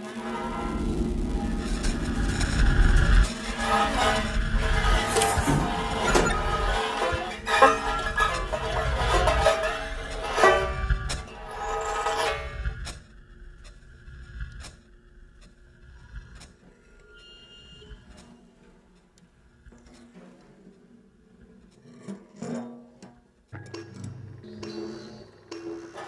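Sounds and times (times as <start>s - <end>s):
banjo scraped and struck with rods: 0.0s - 13.2s, 19.7s - 26.0s
electronics: 0.0s - 18.3s.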